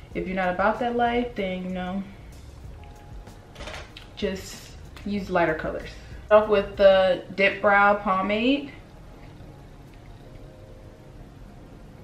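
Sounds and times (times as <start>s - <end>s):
low steady hiss: 0.0s - 12.0s
faint hum: 4.1s - 12.0s.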